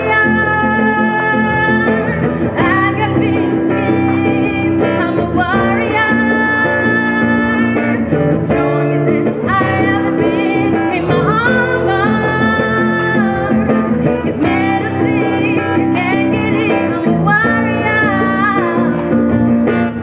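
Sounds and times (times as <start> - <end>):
plucked guitar: 0.0 - 20.0
woman singing into a microphone: 0.0 - 20.0.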